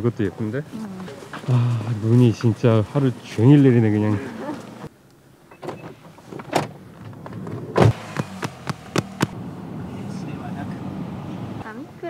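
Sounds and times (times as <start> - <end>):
car door opening and shutting: 5.5 - 9.4
car cabin low hum: 6.7 - 11.7.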